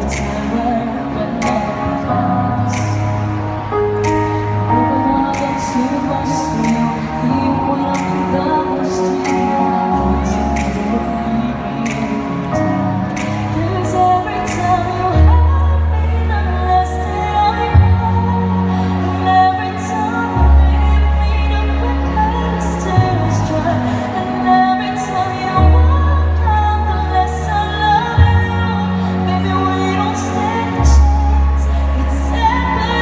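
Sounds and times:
backing track through speakers: 0.0s - 33.0s
woman singing pop song: 0.0s - 33.0s.

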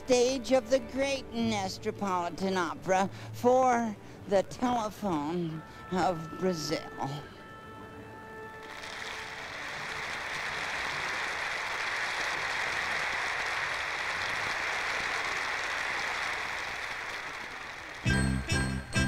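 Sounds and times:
audience applause: 8.6s - 18.1s.

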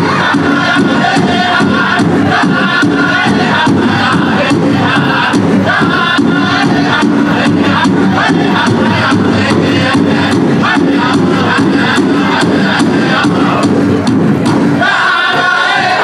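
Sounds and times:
men singing together: 0.0s - 13.8s, 14.8s - 16.0s
big drum beat: 0.0s - 16.0s.

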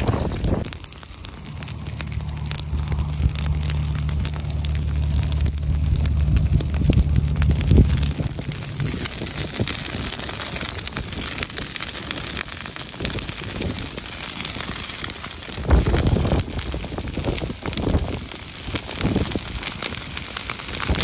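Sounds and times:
dry grass burning crackle: 0.0s - 21.0s
wind rumble on microphone: 0.0s - 21.0s.

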